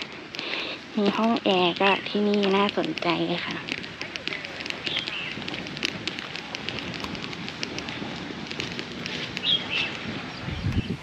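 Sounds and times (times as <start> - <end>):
rapid irregular crackling clicks: 0.0 - 11.0
steady hiss: 0.0 - 11.0
bird chirp: 4.4 - 5.6, 9.1 - 11.0.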